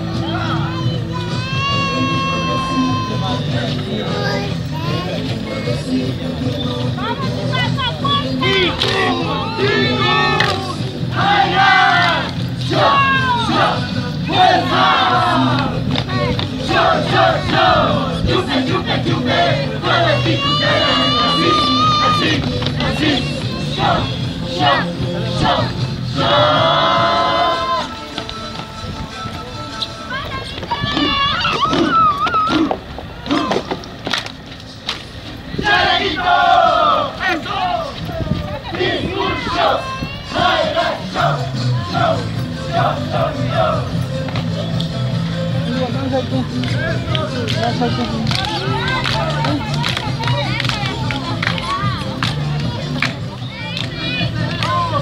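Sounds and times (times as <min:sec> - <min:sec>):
music: 0:00.0 - 0:55.0
group shouting and yelling: 0:00.1 - 0:04.2, 0:07.5 - 0:28.0, 0:30.4 - 0:33.8, 0:35.5 - 0:44.0
dancers shouting group cries: 0:00.2 - 0:03.5, 0:19.9 - 0:22.4, 0:30.7 - 0:33.6.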